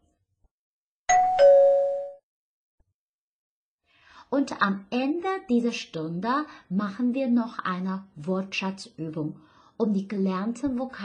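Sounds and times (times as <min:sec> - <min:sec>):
two-note doorbell chime: 0:01.1 - 0:02.2.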